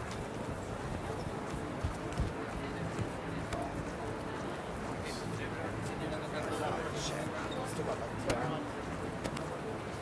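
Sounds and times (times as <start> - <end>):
murmur of passers-by: 0.0 - 10.0
footsteps on paving stones: 0.1 - 3.9.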